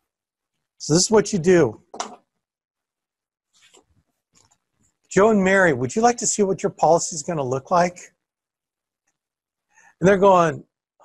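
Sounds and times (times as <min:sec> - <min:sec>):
man speaking: 0:00.8 - 0:01.9, 0:05.1 - 0:08.2, 0:10.0 - 0:10.6.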